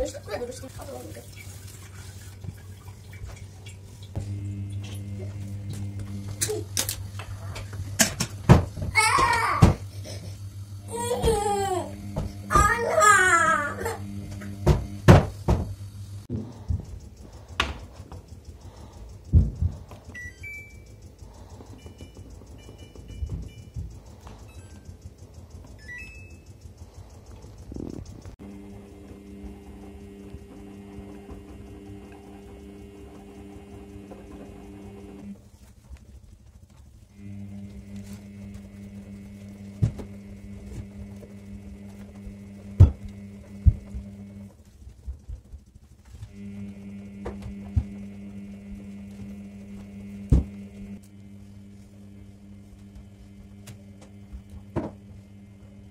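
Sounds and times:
washing machine motor hum: 0:00.0 - 0:55.9.

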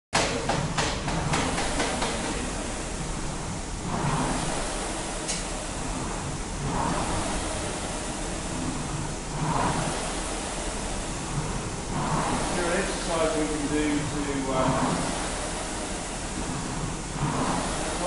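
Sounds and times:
rowing machine fan whooshing: 0:00.2 - 0:18.0
steady hiss: 0:01.5 - 0:18.0.

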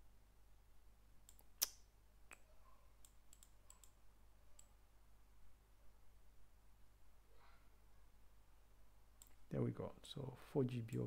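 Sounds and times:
computer mouse clicks: 0:03.0 - 0:04.0.

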